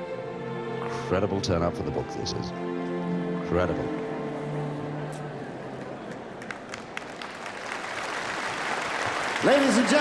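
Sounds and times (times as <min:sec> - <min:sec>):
audience applauding: 0:05.7 - 0:10.0.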